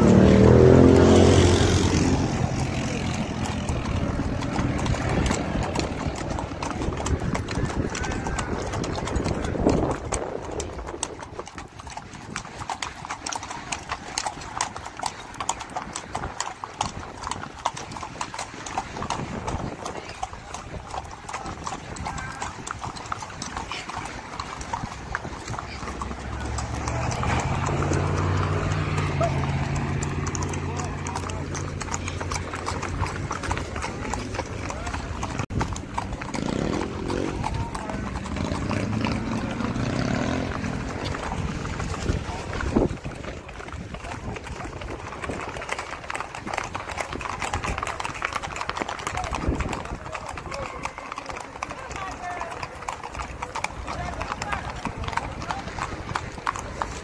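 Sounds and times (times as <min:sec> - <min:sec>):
horse hooves clip-clopping on pavement: 0:00.0 - 0:57.0.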